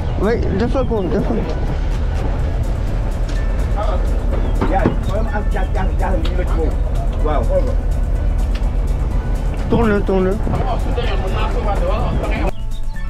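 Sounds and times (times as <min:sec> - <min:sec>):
boat engine rumbling: 0:00.0 - 0:12.7
music with singing: 0:00.7 - 0:13.0.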